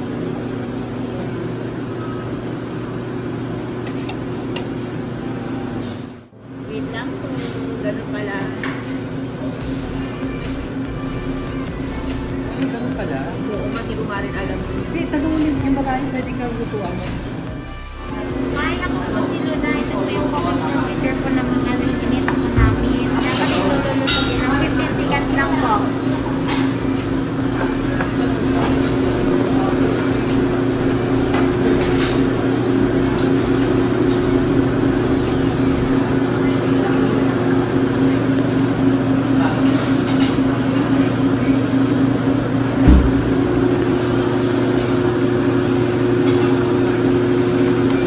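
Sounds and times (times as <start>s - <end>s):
low mechanical hum: 0.0s - 48.0s
dull thump: 42.8s - 43.4s.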